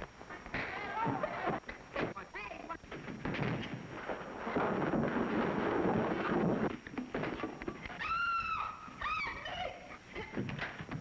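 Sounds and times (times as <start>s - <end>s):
woman screaming: 8.0s - 10.0s.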